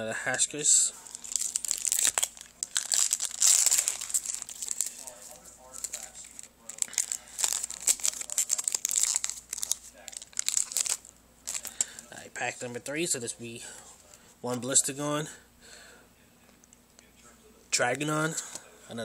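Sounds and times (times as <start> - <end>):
plastic packaging crinkling and tearing: 1.0 - 12.1.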